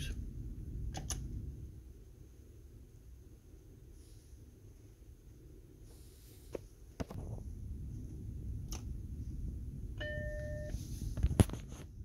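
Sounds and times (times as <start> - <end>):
computer low hum: 0.0 - 12.0
sharp clicks: 0.9 - 1.3.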